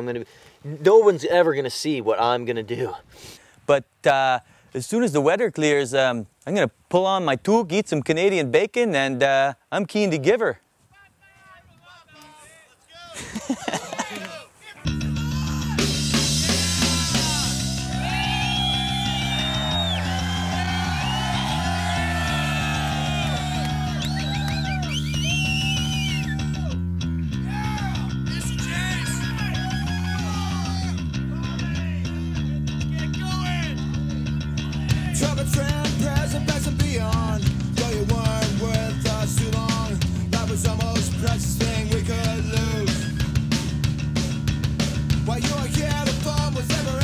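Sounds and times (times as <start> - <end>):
rock music with guitar and bass: 14.9 - 47.0.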